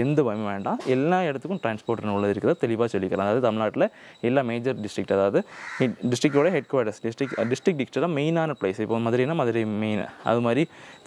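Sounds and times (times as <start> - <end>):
man speaking: 0.0 - 10.7.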